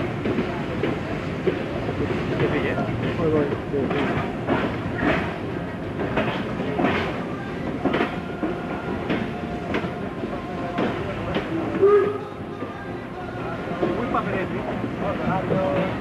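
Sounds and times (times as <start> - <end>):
train wheels clacking over rail joints: 0.0 - 12.8, 13.7 - 16.0
steady train rumble: 0.0 - 16.0.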